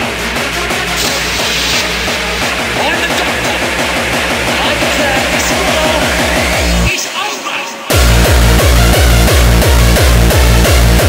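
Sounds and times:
fast kick drum beat: 0:00.0 - 0:06.9, 0:07.9 - 0:11.0
synth sounds: 0:00.9 - 0:07.0.

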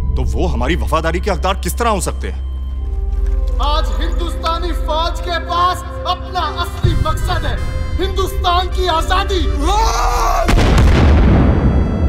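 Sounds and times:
explosion with rumbling decay: 0:10.5 - 0:12.0.

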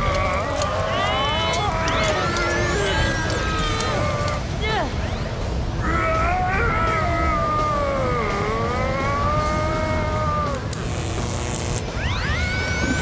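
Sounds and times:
cartoon music with wavering wail: 0:00.0 - 0:13.0
low whirlwind rumble: 0:00.0 - 0:13.0.

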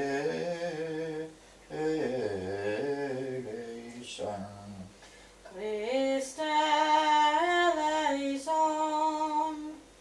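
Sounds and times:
low voice chanting: 0:00.0 - 0:04.9.

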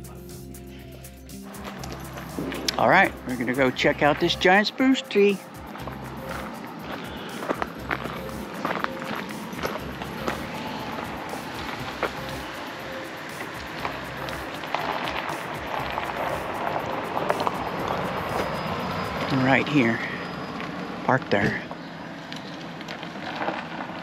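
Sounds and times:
steady outdoor noise: 0:00.0 - 0:24.0
footsteps crunching on gravel: 0:01.4 - 0:04.5, 0:05.5 - 0:12.7, 0:13.3 - 0:19.3.

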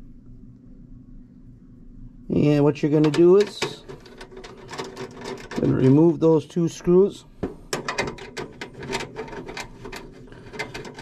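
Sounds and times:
screwdriver clicking on metal: 0:07.8 - 0:11.0.

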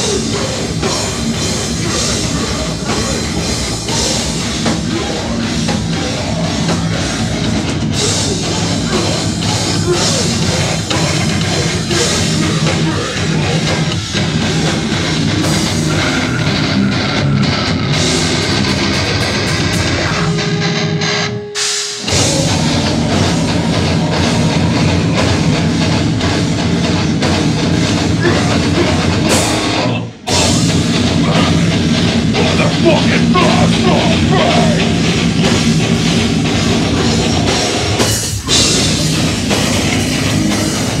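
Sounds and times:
bass guitar: 0:00.0 - 0:41.0
distorted electric guitar: 0:00.0 - 0:41.0
drum kit: 0:00.0 - 0:41.0.

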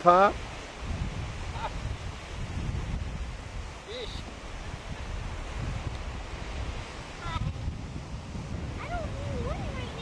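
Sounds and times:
surf washing: 0:00.0 - 0:10.0
wind gusting on microphone: 0:00.0 - 0:10.0.

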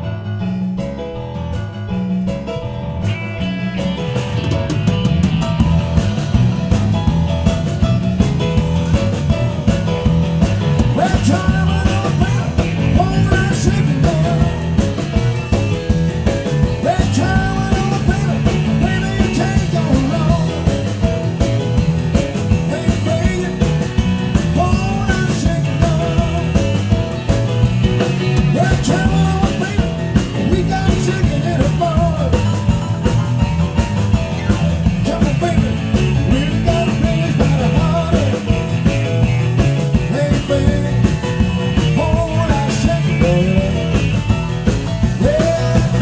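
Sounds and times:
drum kit: 0:00.0 - 0:46.0
electric bass: 0:00.0 - 0:46.0
electric guitar: 0:00.0 - 0:46.0
piano: 0:00.0 - 0:46.0
man singing: 0:10.8 - 0:15.2, 0:16.4 - 0:21.2, 0:22.2 - 0:27.2, 0:28.1 - 0:33.1, 0:34.8 - 0:46.0.

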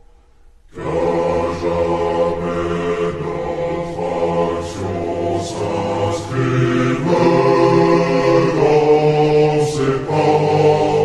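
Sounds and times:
choir singing with reverb: 0:00.7 - 0:11.0.

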